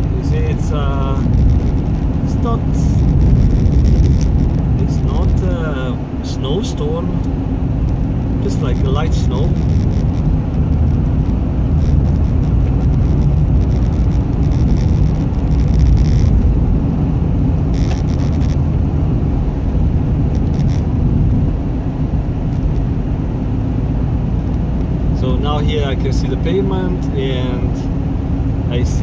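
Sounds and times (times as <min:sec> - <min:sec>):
car cabin rumble on icy road: 0:00.0 - 0:29.0.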